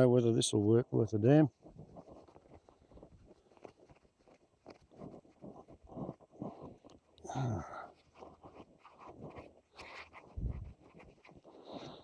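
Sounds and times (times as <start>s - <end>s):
camera rustling: 1.5s - 7.2s, 7.9s - 12.0s.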